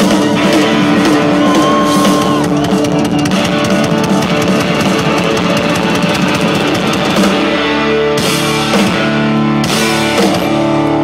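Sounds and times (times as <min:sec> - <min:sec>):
drums: 0:00.0 - 0:11.0
electric guitar: 0:00.0 - 0:11.0.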